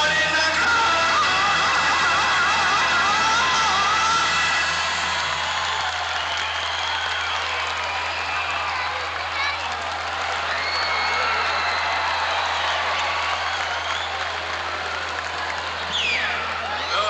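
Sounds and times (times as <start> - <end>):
dense wash of music: 0.0 - 6.0.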